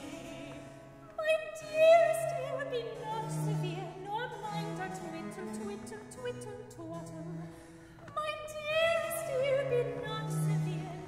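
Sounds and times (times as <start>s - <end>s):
cello and harpsichord playing: 0.0s - 11.0s.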